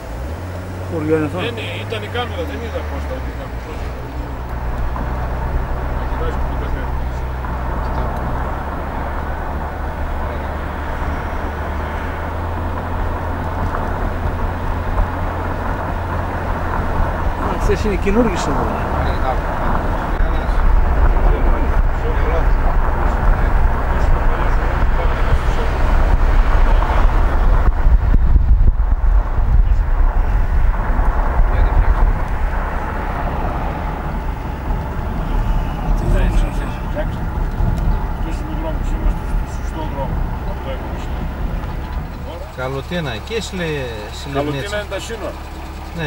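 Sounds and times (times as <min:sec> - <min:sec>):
car engine and road rumble: 0:00.0 - 0:46.0.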